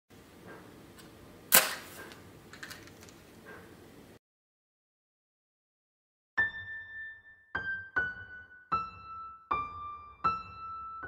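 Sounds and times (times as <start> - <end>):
match striking on matchbox: 1.0 - 3.3
match flaring hiss: 1.5 - 2.2.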